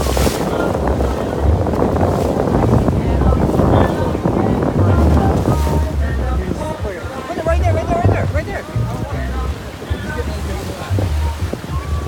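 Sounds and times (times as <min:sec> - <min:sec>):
waves breaking against rocks: 0:00.0 - 0:12.0
wind buffeting microphone: 0:00.0 - 0:12.0.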